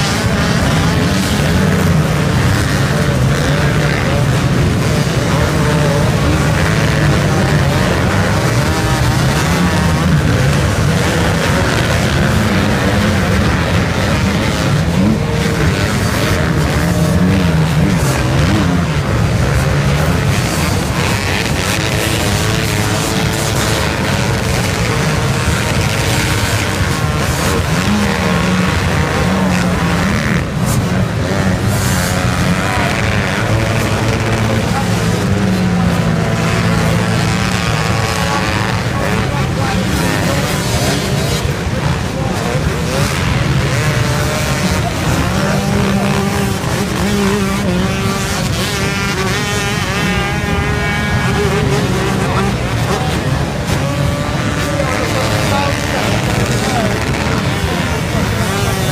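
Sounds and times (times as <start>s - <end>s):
motocross engines revving: 0.0s - 58.9s.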